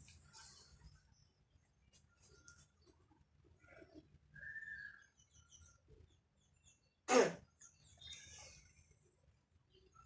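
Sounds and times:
person coughing: 7.1 - 7.4.

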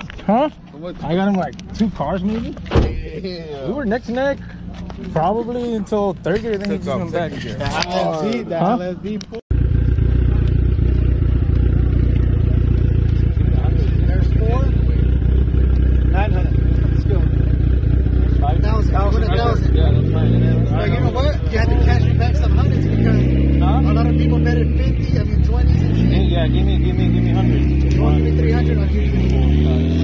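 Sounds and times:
people talking: 0.0 - 9.4, 10.0 - 30.0
car engine idling and revving: 0.0 - 30.0.

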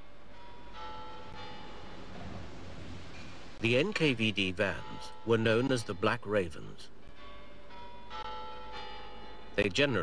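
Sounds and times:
bells chiming: 0.0 - 2.2, 3.1 - 10.0.

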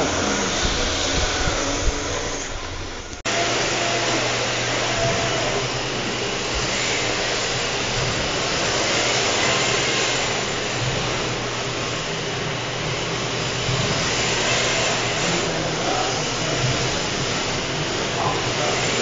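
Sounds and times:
steady low hum: 0.0 - 3.2
rc cars whirring: 4.0 - 19.0.

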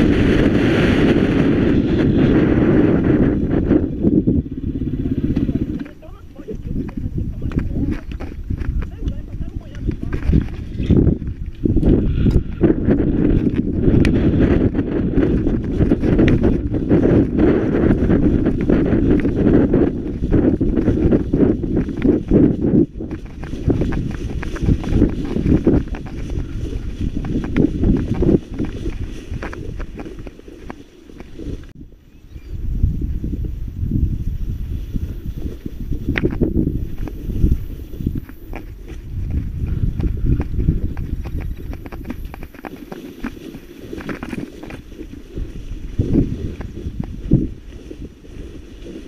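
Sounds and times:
footsteps in field: 5.0 - 31.8, 32.7 - 49.0
leaves brushing against legs: 18.0 - 31.7, 34.6 - 49.0.

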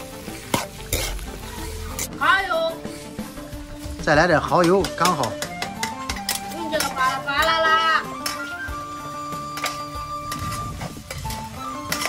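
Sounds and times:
metal utensils clinking in a wok: 0.0 - 2.2, 4.3 - 12.0
background music with held notes: 0.0 - 12.0.

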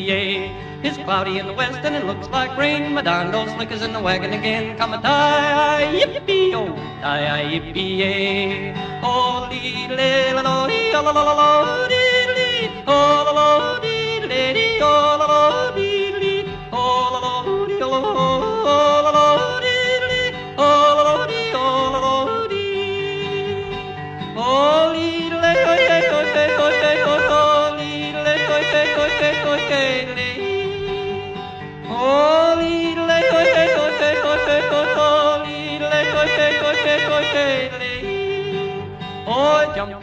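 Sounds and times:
instrumental backing: 0.0 - 40.0
man yodeling: 0.0 - 40.0.

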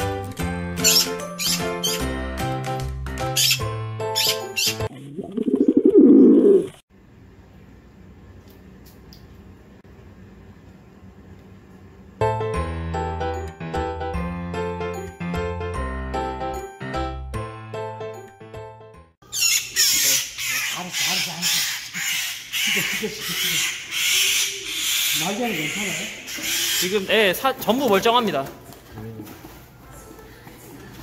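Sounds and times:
background music: 0.0 - 4.9, 12.2 - 19.1
magpie harsh raspy screams: 19.3 - 27.1.

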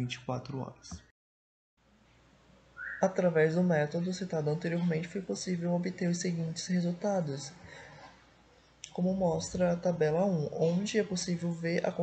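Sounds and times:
faint room hiss: 1.8 - 12.0
rising whistle-like tone: 2.8 - 3.1
person narrating: 3.0 - 7.6, 8.8 - 12.0.

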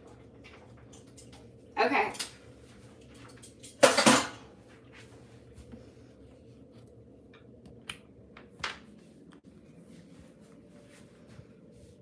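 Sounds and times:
metal utensils clattering on countertop: 3.1 - 4.5.

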